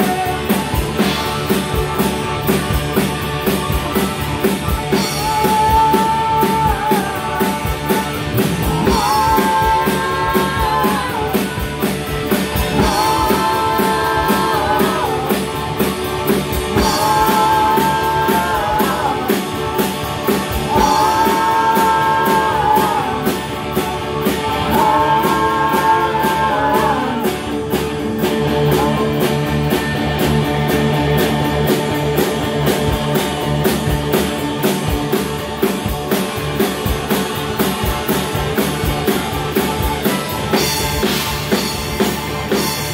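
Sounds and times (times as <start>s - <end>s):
heavy low bass part: 0.0s - 42.9s
rock band playing live: 0.0s - 42.9s.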